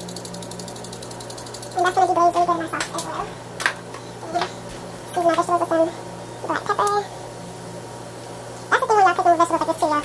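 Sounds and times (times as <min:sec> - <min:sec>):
steady low hum: 0:00.0 - 0:10.0
woman speaking: 0:01.8 - 0:03.4, 0:04.2 - 0:07.1, 0:08.7 - 0:10.0
vegetables sizzling in a skillet: 0:06.1 - 0:10.0.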